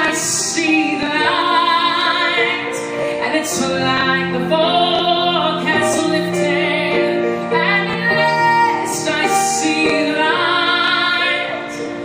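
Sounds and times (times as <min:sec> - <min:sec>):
musical accompaniment: 0:00.0 - 0:12.0
woman singing a ballad: 0:00.0 - 0:12.0.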